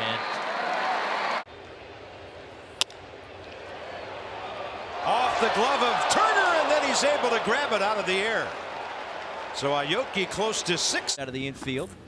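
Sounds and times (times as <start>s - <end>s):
ballpark crowd noise: 0.0s - 11.2s
stadium background: 0.0s - 12.0s.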